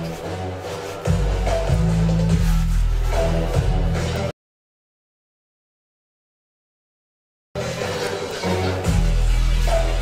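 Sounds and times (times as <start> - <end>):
music with heavy bass: 0.0 - 4.3, 7.6 - 10.0.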